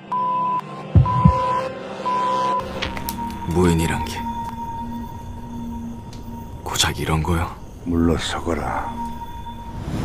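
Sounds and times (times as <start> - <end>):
sustained drone: 0.0 - 10.0.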